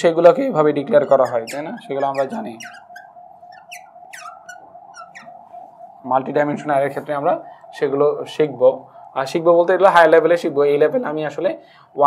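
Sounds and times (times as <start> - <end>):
faint steady hum: 0.0 - 12.0
marker squeaking on glass: 0.8 - 5.8.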